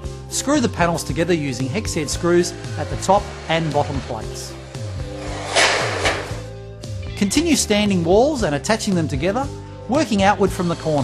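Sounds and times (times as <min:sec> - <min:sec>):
guitar music: 0:01.1 - 0:07.2
screw gun driving screw: 0:05.2 - 0:06.4.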